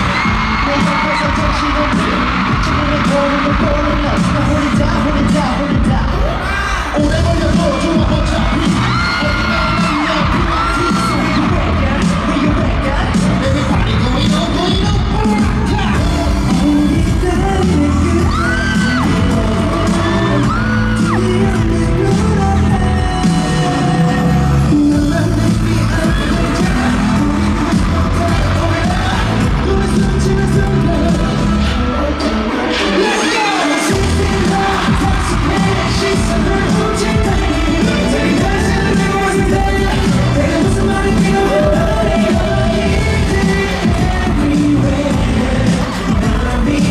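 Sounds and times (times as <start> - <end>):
crowd cheering: 0.0 - 46.9
live pop music with heavy beat: 0.0 - 46.9.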